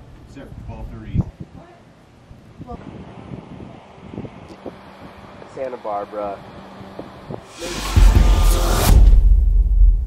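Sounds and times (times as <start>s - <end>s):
rising music swell: 6.0s - 9.6s.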